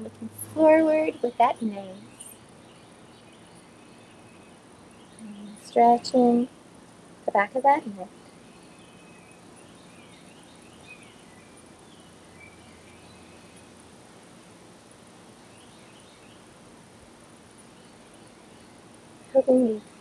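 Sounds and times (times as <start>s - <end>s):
distant birds chirping: 0.0s - 20.0s.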